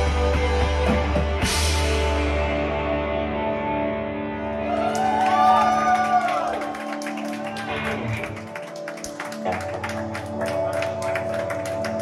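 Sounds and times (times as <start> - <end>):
electric guitars: 0.0 - 12.0.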